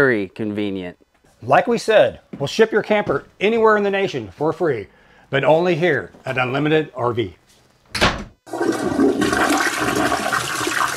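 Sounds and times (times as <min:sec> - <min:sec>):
door shutting: 0:07.9 - 0:08.4
toilet flushing: 0:08.5 - 0:10.9.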